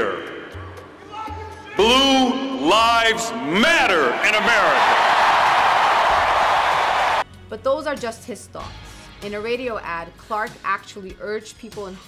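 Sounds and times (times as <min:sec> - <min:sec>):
crowd cheering and applauding: 0:03.0 - 0:07.2.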